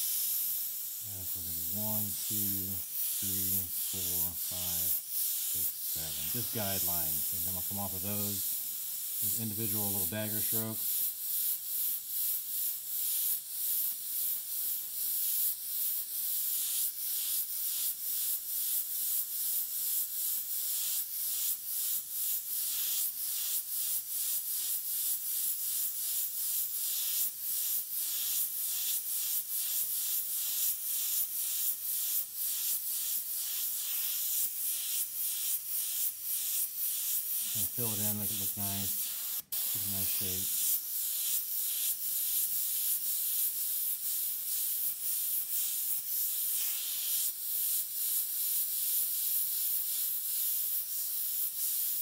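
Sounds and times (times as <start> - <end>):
airbrush hissing: 0.0 - 52.0.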